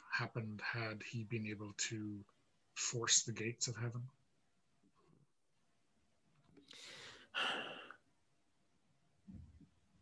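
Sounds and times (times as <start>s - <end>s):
person sighing: 6.7s - 8.0s.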